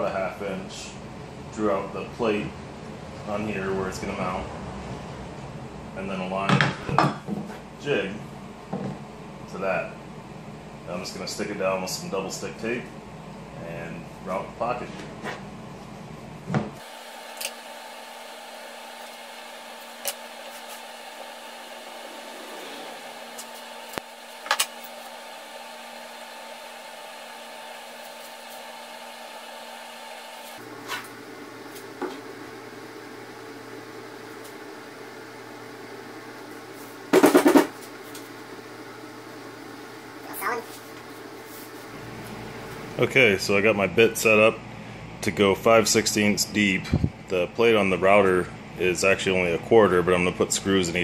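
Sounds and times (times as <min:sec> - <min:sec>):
shop background hum: 0:00.0 - 0:51.0.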